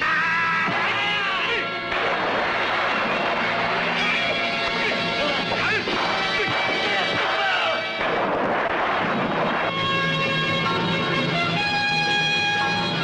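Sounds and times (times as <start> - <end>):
dense sound effects: 0.7 - 11.6
sustained music notes: 8.8 - 13.0.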